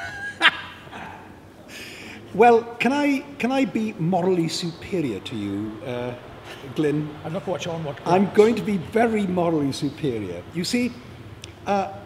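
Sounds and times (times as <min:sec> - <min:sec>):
man laughing hard: 0:00.0 - 0:01.1.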